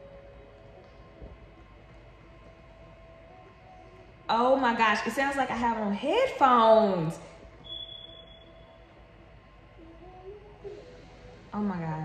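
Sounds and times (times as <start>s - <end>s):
faint music from speakers: 0.0s - 12.0s.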